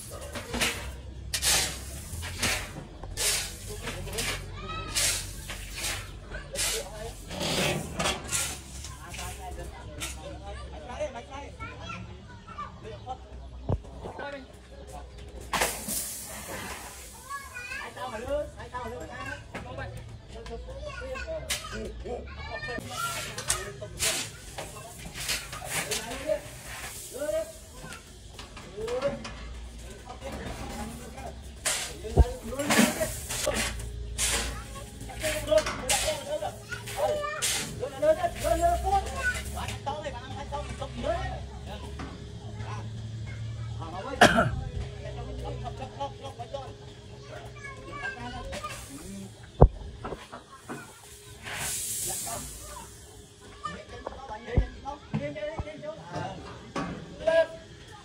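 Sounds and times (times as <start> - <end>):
people talking in background: 0.0 - 58.0.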